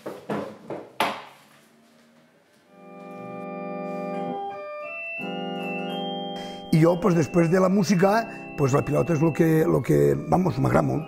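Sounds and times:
electronic organ held chords: 0:02.7 - 0:11.0.

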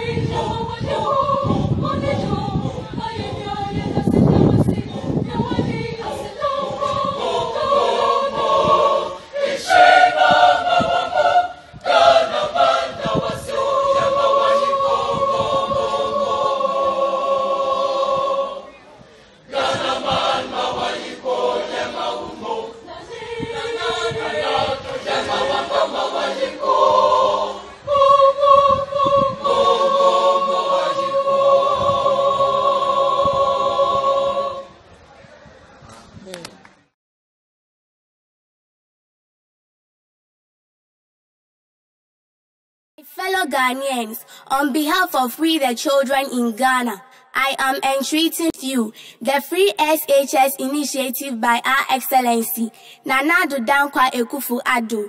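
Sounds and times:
choir singing in parts: 0:00.0 - 0:34.9.

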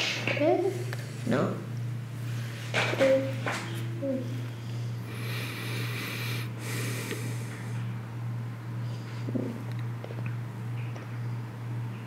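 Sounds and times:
steady low hum: 0:00.0 - 0:12.0
man breathing into microphone: 0:05.1 - 0:07.8.

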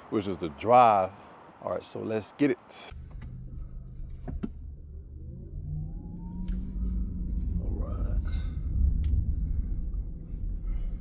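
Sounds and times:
road rumble and hum: 0:00.0 - 0:11.0
electric drive whine: 0:02.9 - 0:10.8.

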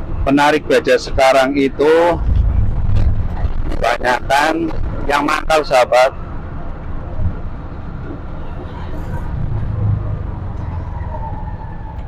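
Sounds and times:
auto-rickshaw engine rumble: 0:00.0 - 0:12.0
road noise: 0:00.0 - 0:12.0.

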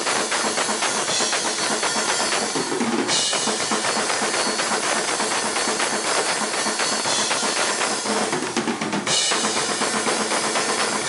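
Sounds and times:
blast beat drumming: 0:00.0 - 0:11.0
crashing cymbals: 0:00.0 - 0:11.0.

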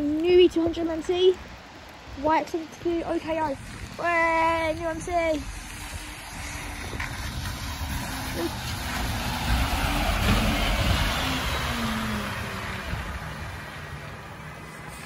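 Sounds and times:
tyres hissing on wet road: 0:00.0 - 0:15.0
bus engine passing: 0:05.6 - 0:15.0.

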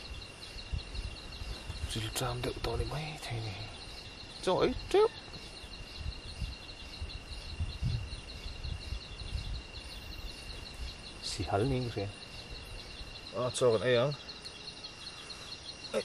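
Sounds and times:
insects chirring: 0:00.0 - 0:16.0.

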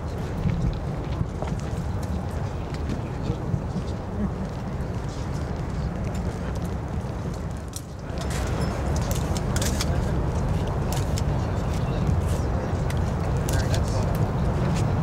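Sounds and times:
steady low rumble: 0:00.0 - 0:15.0
voices outdoors: 0:00.0 - 0:15.0.

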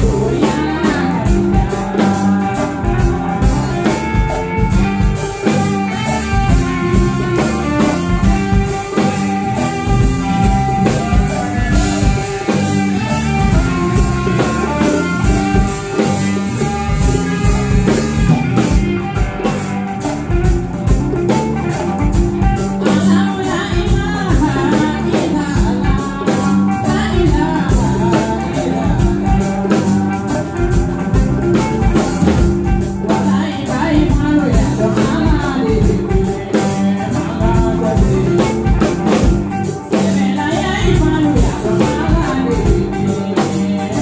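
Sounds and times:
bass guitar: 0:00.0 - 0:44.0
djembe: 0:00.0 - 0:44.0
drum kit: 0:00.0 - 0:44.0
electric guitar: 0:00.0 - 0:44.0.

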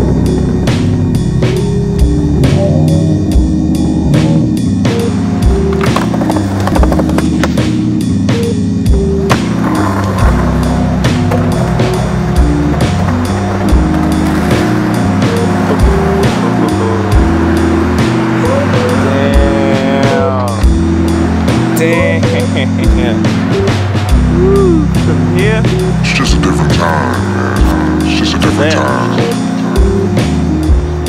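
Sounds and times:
gliding pitched sounds: 0:00.0 - 0:07.5, 0:09.5 - 0:29.9
bass line: 0:00.0 - 0:31.0
hip-hop drum beat: 0:10.3 - 0:20.9, 0:21.5 - 0:31.0.

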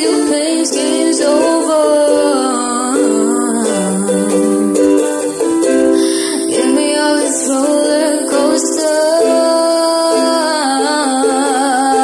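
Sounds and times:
ukulele playing chords: 0:00.0 - 0:12.0.

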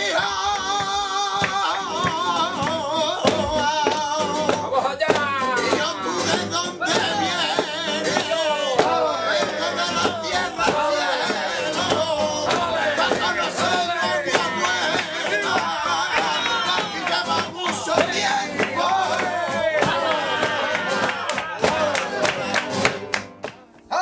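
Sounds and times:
rhythmic handclaps: 0:00.0 - 0:23.9
flamenco guitars strumming: 0:00.0 - 0:24.0
man singing flamenco: 0:00.0 - 0:24.0.

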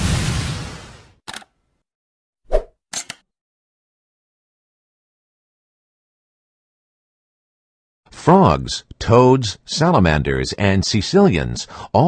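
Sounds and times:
sharp click: 0:02.9 - 0:03.3.

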